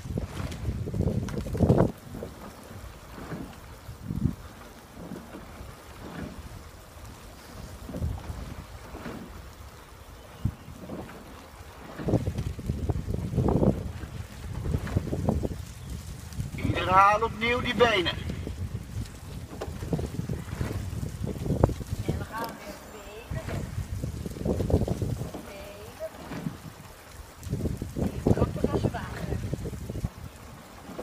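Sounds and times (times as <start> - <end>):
steady rush of wind: 0.0 - 10.9, 11.6 - 30.8
wind buffeting microphone: 0.0 - 31.0.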